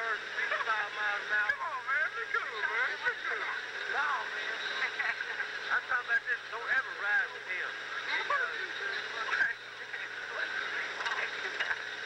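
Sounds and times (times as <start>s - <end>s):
tape hiss and hum: 0.0s - 12.0s.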